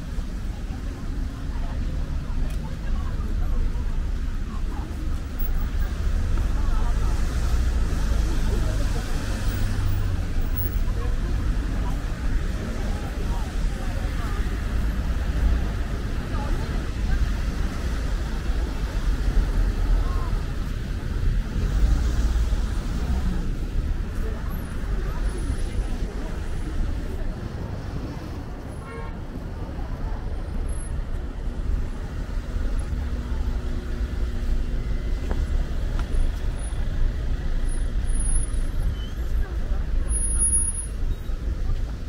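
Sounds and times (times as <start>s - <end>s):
engine hum: 0.0s - 42.0s
pedestrians talking: 0.0s - 42.0s
road traffic: 0.0s - 42.0s.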